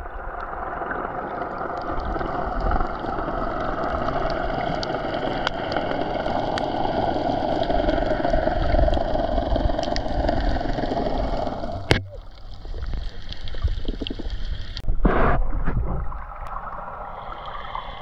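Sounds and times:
underwater rushing water: 0.0 - 18.0.

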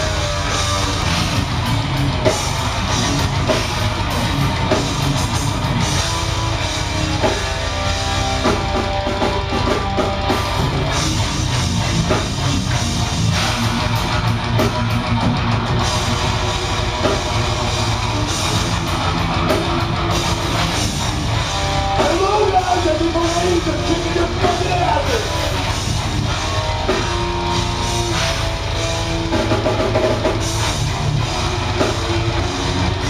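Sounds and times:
death metal band playing live: 0.0 - 33.0.

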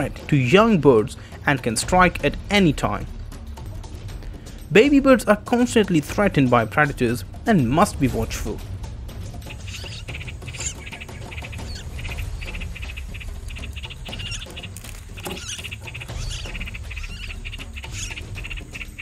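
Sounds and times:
nestling birds chirping in distress: 9.4 - 19.0.

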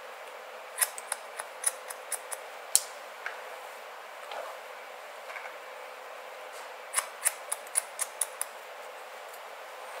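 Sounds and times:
shears snipping hair: 0.8 - 2.4, 6.9 - 8.6.

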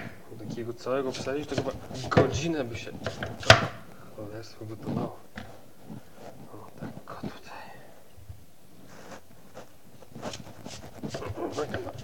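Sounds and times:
knife scraping strokes: 1.0 - 3.7, 10.1 - 12.0.

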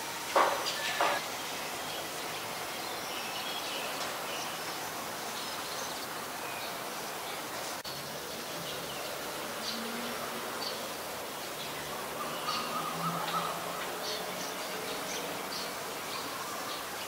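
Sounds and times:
insects droning: 0.0 - 17.0.

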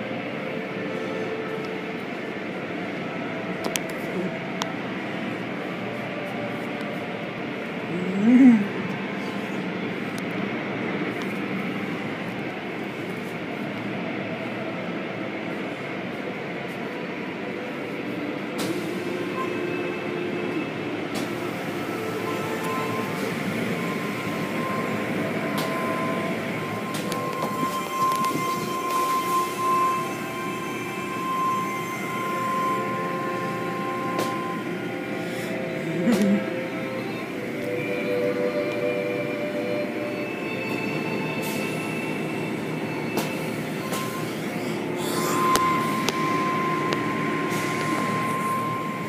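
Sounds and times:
car wash machinery drone: 0.0 - 49.0
high whine: 0.0 - 49.0.

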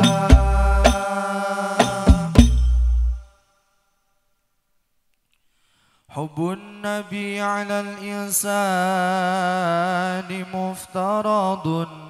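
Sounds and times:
man singing unaccompanied: 0.0 - 2.6, 6.1 - 12.0.

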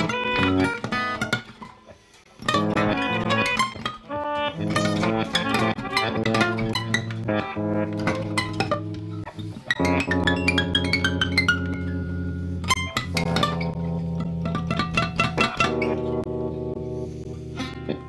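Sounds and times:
guitars improvising: 0.0 - 18.0.

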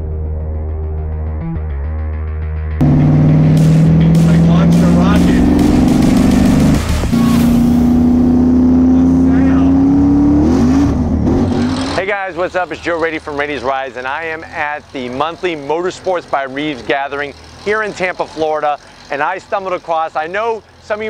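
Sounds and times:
car engine revving: 2.8 - 19.8.

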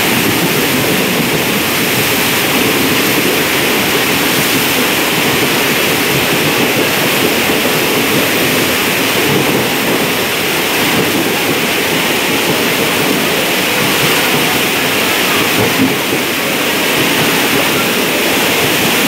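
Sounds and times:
rush of water: 0.0 - 19.0
train running through water: 0.0 - 19.0.

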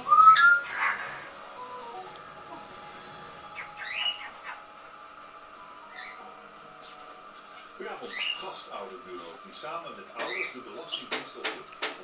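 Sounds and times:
puppies squealing and whining: 0.0 - 2.7, 3.4 - 4.7, 5.9 - 6.3.

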